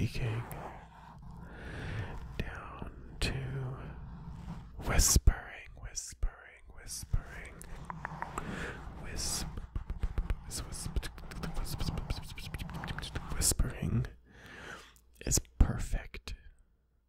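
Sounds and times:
fingers rubbing microphone foam: 0.0s - 5.2s, 6.9s - 14.0s
person whispering: 0.0s - 14.2s, 14.8s - 16.6s.

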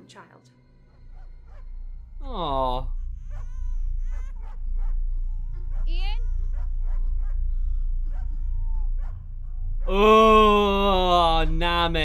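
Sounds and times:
low steady rumble: 0.9s - 12.0s.

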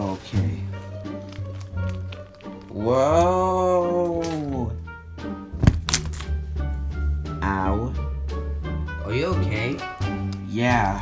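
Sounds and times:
background music: 0.0s - 11.0s
plush toy thunking onto bed: 5.5s - 6.2s.

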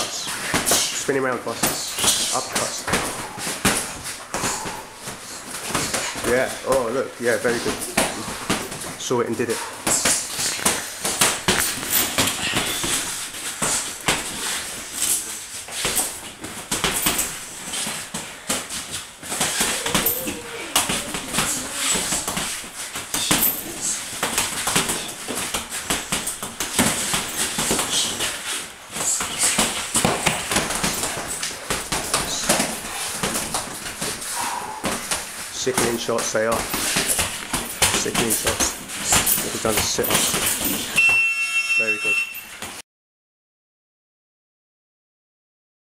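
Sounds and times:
feet shuffling and stamping: 0.0s - 41.0s
boxing gloves landing punches: 1.6s - 9.0s, 9.8s - 14.5s, 15.7s - 41.0s.

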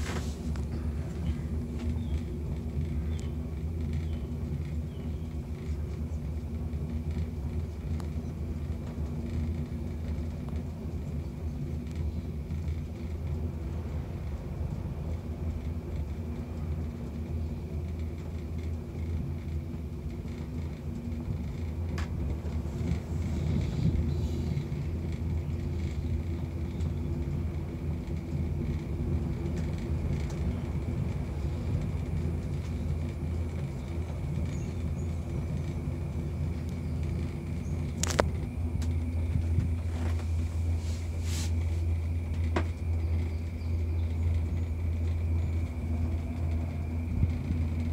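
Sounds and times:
gondola cabin rumble: 0.0s - 47.9s
faint high whine: 11.0s - 47.9s.

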